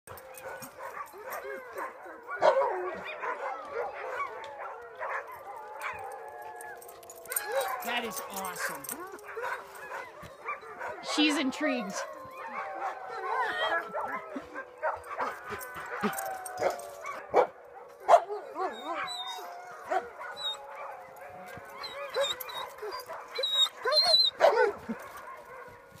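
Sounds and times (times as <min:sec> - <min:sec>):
dogs whining and yipping: 0:00.1 - 0:26.0
dog yipping: 0:18.1 - 0:20.9, 0:21.8 - 0:25.3.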